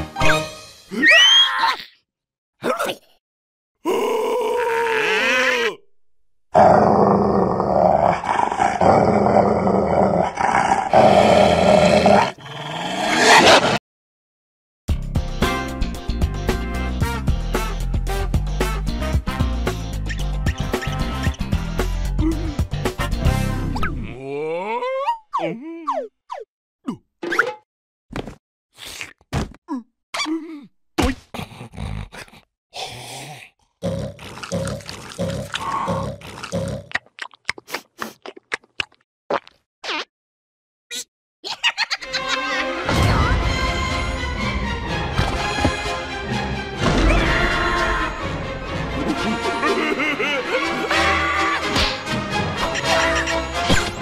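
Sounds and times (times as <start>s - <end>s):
cartoon beast growling: 3.8s - 5.8s, 6.5s - 13.8s, 31.4s - 32.5s, 33.2s - 36.9s
cartoon vocal cry: 24.0s - 26.1s.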